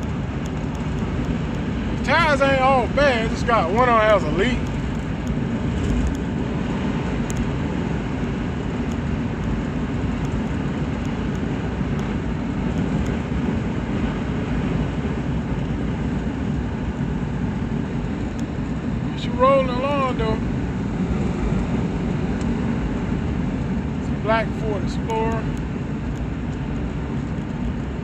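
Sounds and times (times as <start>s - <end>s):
car engine hum: 0.0s - 28.0s.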